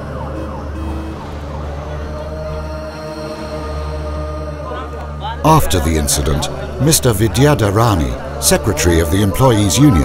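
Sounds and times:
low hum of street traffic: 0.0s - 10.0s.

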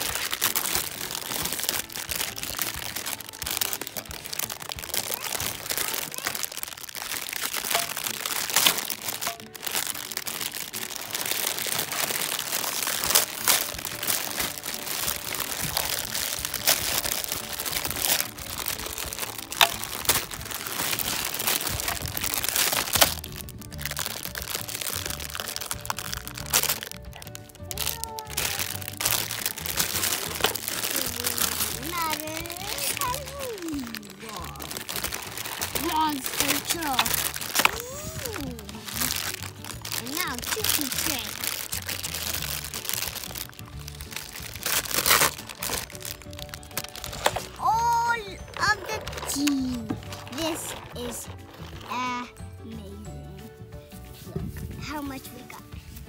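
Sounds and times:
plastic packaging crinkling: 0.0s - 52.4s
low bass notes: 0.0s - 55.1s
background music: 0.0s - 56.0s.

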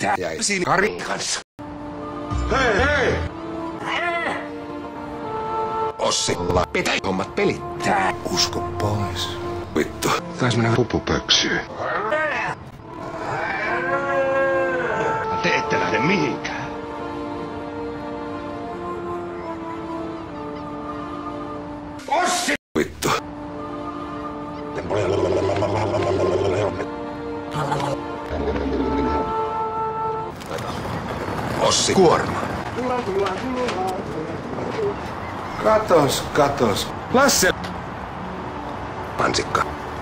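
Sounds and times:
pigeons cooing: 28.3s - 29.4s.

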